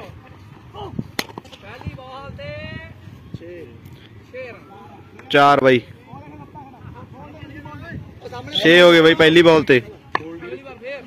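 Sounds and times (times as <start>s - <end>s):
bat striking tennis ball: 1.1s - 1.6s.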